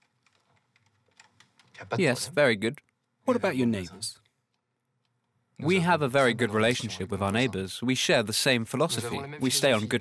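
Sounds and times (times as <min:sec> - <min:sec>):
keyboard typing: 0:00.0 - 0:01.8
man talking: 0:01.8 - 0:04.2, 0:05.6 - 0:10.0.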